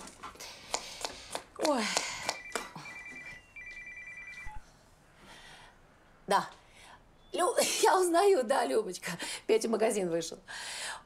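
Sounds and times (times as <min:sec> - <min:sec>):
telephone ringing electronic trill: 0:02.4 - 0:04.6.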